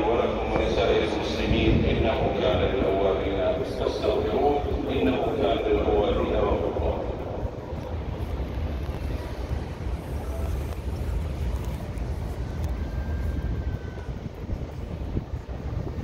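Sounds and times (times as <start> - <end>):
low outdoor rumble: 0.0 - 16.0.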